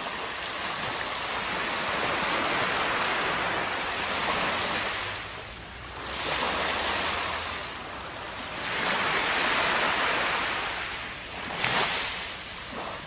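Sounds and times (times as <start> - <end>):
surf washing on sandy beach: 0.0 - 13.0.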